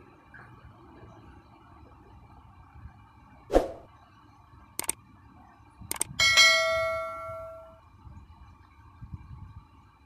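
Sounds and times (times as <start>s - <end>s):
bell ding chime: 6.2s - 7.8s.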